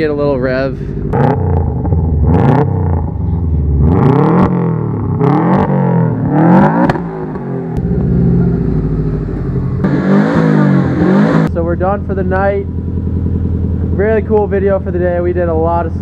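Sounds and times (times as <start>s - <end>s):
car engine revving: 0.0s - 16.0s.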